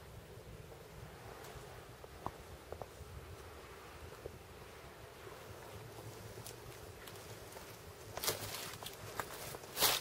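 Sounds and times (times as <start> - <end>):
footsteps in dry leaves: 7.1 - 10.0.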